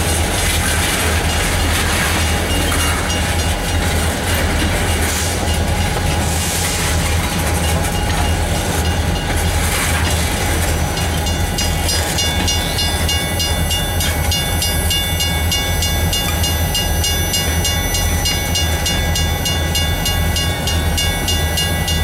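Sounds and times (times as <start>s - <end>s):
freight train rolling past: 0.0s - 22.0s
level-crossing bell ringing: 10.8s - 22.0s.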